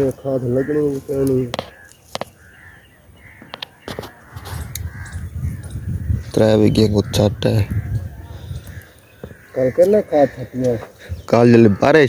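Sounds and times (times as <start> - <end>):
crows cawing: 0.0 - 12.0.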